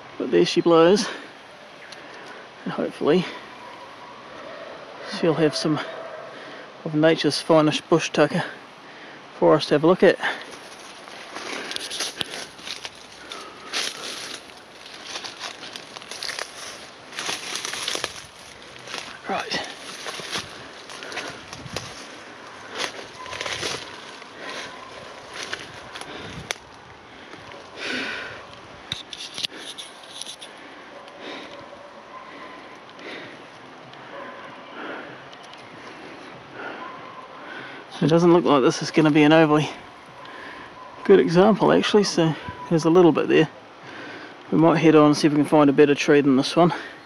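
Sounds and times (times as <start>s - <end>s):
leaf litter crackling: 10.2s - 31.5s
footsteps in undergrowth: 10.2s - 37.0s
branches brushing past: 10.4s - 30.7s.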